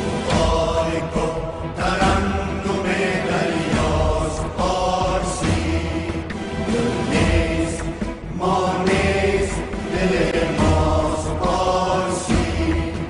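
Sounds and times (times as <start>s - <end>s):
chant-like singing: 0.0s - 13.0s.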